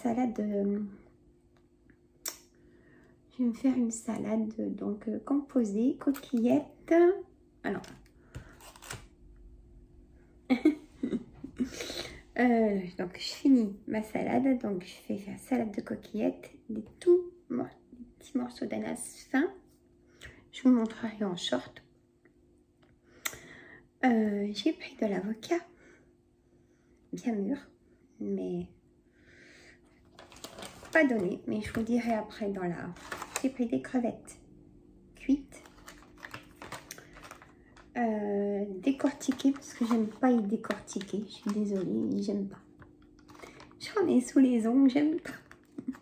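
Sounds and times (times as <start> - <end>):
faint steady hum: 0.0 - 46.0
plastic crinkle: 7.7 - 9.1, 30.1 - 32.2, 32.9 - 33.6, 35.5 - 38.0, 38.9 - 42.3, 43.2 - 44.0
plastic tray rustling: 30.1 - 32.1, 32.9 - 33.6, 35.6 - 37.9, 39.0 - 42.2, 43.2 - 43.8
plastic clicks and crackles: 35.6 - 37.9, 39.0 - 42.2, 42.8 - 43.8.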